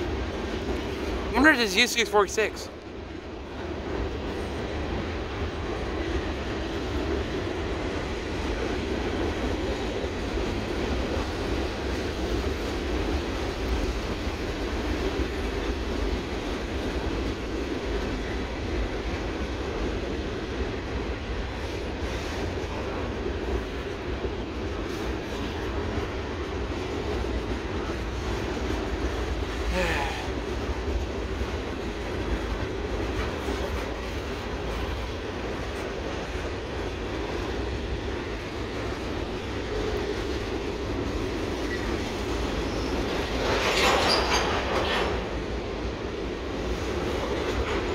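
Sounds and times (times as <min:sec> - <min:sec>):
train wheels rumbling on bridge: 0:00.0 - 0:47.9
brief wheel squeal: 0:42.6 - 0:43.1, 0:43.8 - 0:44.5.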